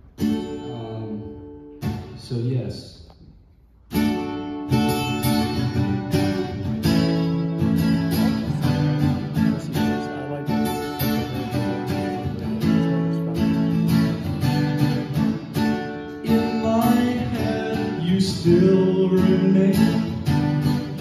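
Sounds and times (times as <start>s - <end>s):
acoustic guitar strumming chords: 0.0s - 2.3s, 3.9s - 21.0s.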